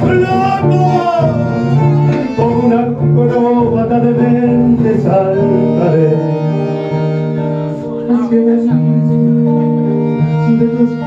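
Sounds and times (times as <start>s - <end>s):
bandoneon sustained chords: 0.0s - 11.0s
guitar: 0.0s - 11.0s.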